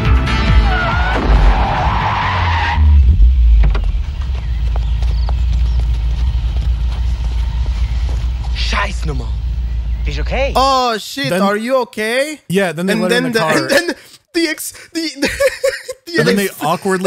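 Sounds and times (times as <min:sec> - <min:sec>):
car tyres screeching: 0:00.5 - 0:10.7
car engine idling rumble: 0:02.9 - 0:10.8
loud thump of impact: 0:03.0 - 0:04.2.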